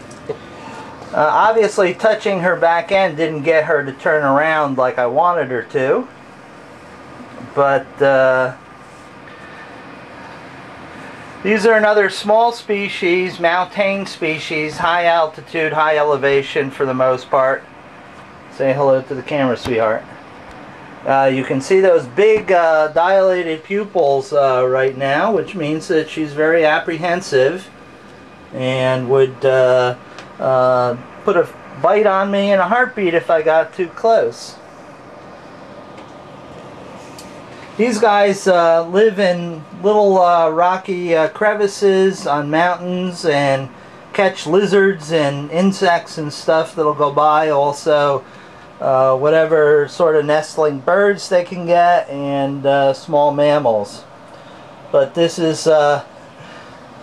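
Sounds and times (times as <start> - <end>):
room background hiss: 0.0 - 57.0.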